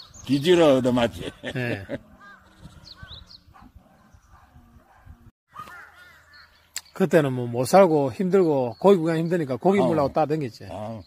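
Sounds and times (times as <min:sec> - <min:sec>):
faint bird calls: 0:00.0 - 0:07.0.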